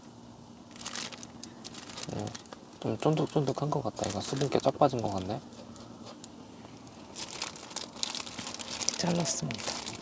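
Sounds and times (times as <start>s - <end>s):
plastic gloves crinkling: 0.7s - 5.8s, 6.7s - 10.0s.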